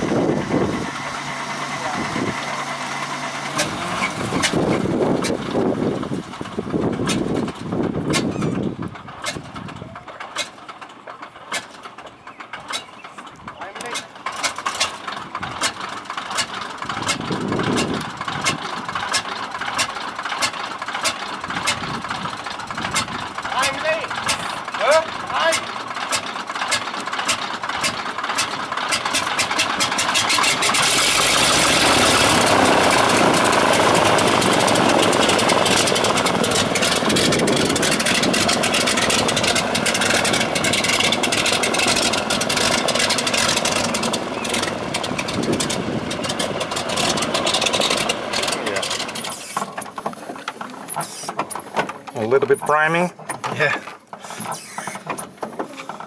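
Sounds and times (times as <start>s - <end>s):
radial aircraft engine pulsing: 0.0s - 52.2s
propeller wash blasting spray: 28.9s - 49.6s.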